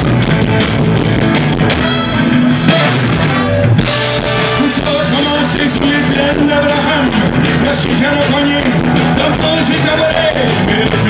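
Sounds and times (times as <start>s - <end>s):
bass guitar: 0.0s - 11.0s
driving drum kit: 0.0s - 11.0s
electric guitars: 0.0s - 11.0s.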